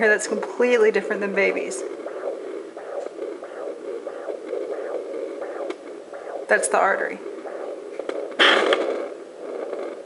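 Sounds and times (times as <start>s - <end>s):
doppler pulsing swishes: 0.0s - 9.8s.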